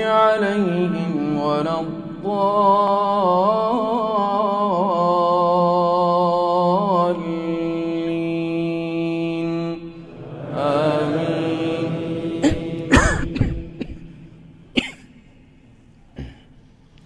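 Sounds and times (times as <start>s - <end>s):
man chanting recitation: 0.0s - 14.2s
coughing and throat-clearing: 12.4s - 15.2s, 16.2s - 16.6s.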